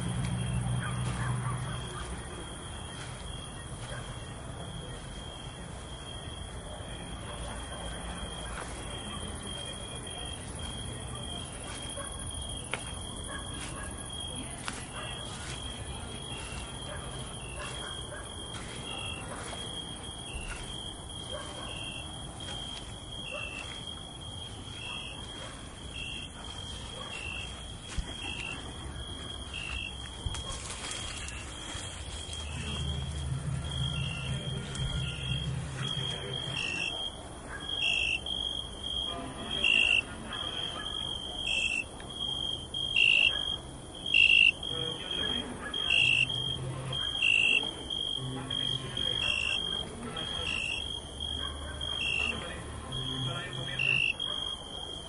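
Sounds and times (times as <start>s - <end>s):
cricket chirping trill: 0.0s - 55.0s
low hum: 31.2s - 36.5s.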